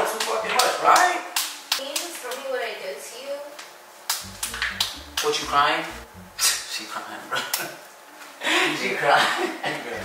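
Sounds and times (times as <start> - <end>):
hand claps: 0.0 - 2.4, 4.1 - 5.6.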